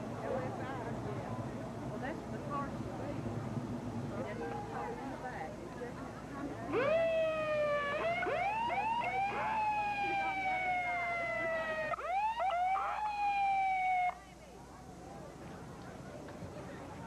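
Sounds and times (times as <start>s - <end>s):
vehicle siren wailing: 6.7s - 14.2s.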